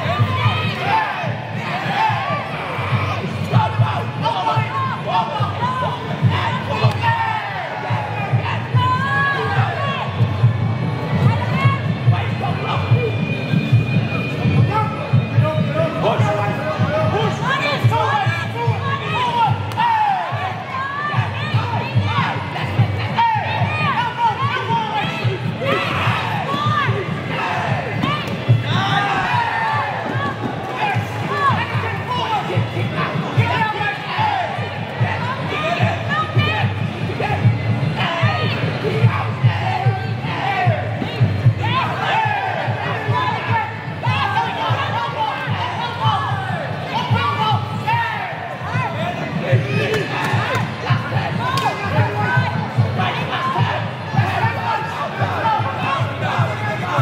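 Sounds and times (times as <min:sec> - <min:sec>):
crowd shouting and yelling: 0:00.0 - 0:57.0.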